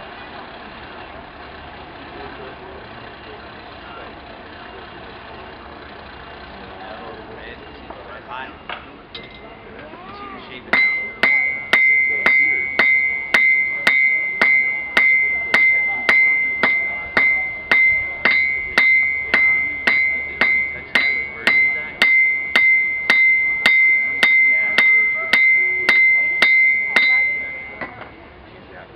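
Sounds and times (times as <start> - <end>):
anvil ringing: 10.5 - 28.2
hammer striking iron on anvil: 10.6 - 28.2.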